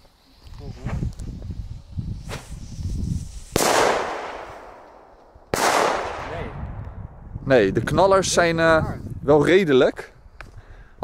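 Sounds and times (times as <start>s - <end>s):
firecrackers banging with echo: 3.5s - 6.5s.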